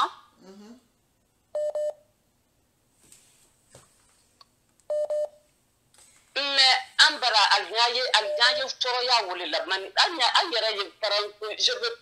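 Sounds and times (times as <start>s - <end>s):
telephone double beep: 1.6s - 2.0s, 4.9s - 5.3s.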